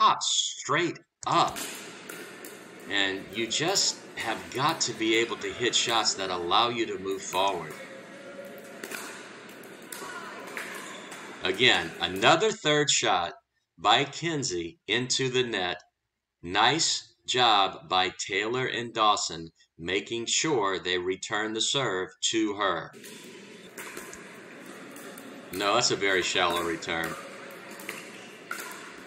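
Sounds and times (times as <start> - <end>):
indoor hall background noise: 1.3 - 12.5, 22.9 - 29.0
paddle hitting plastic ball: 1.5 - 6.4, 7.1 - 12.2, 23.0 - 29.0.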